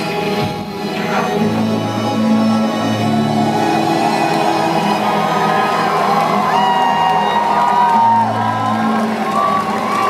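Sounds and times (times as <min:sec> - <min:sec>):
live concert music: 0:00.0 - 0:10.0
audience whooping and cheering: 0:02.9 - 0:10.0.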